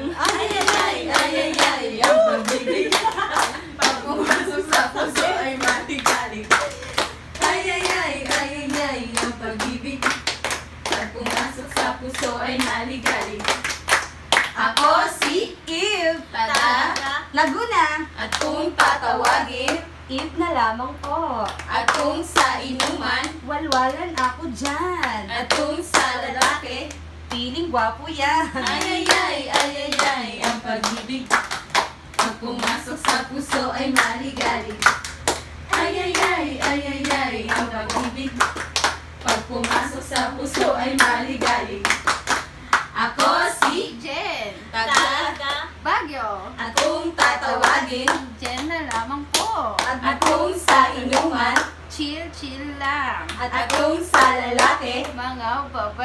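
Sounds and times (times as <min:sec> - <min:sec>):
woman singing a chant: 0:00.0 - 0:03.0, 0:03.8 - 0:13.7, 0:14.4 - 0:31.5, 0:32.2 - 0:35.0, 0:39.2 - 0:42.0, 0:42.9 - 0:45.9, 0:46.5 - 0:56.0
women clapping hands: 0:00.2 - 0:14.6, 0:28.6 - 0:43.8.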